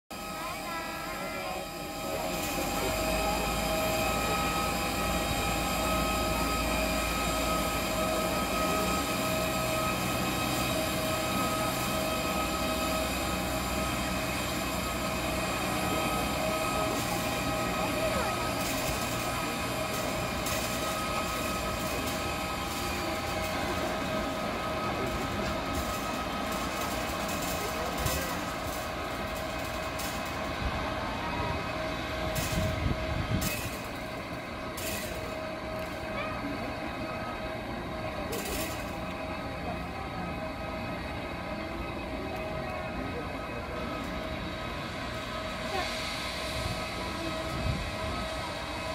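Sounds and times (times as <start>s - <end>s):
airliner engine whine: 0.1s - 48.9s.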